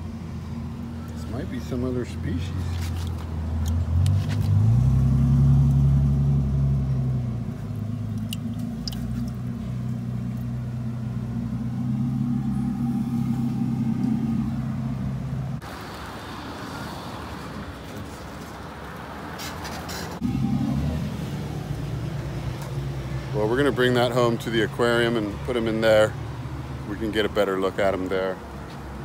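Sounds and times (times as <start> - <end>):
outdoor background noise: 0.0 - 29.0
car engine idling: 6.0 - 15.6, 20.2 - 25.1.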